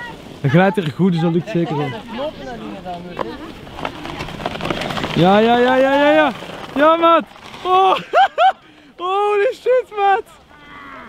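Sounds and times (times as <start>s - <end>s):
board scraping down snow slope: 1.4s - 8.6s.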